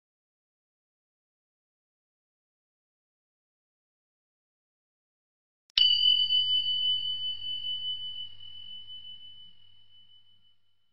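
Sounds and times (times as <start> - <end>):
bell-like chime: 5.8 - 10.9.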